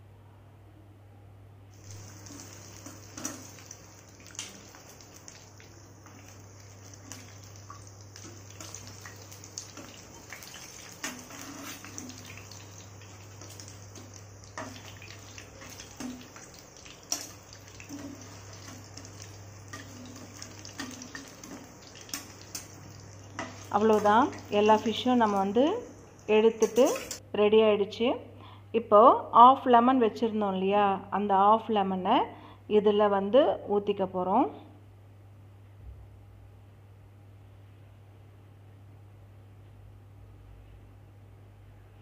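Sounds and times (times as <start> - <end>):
low steady hum: 0.0 - 42.0
fish sizzling in oil: 1.8 - 27.2
oil crackles and pops: 1.8 - 27.2.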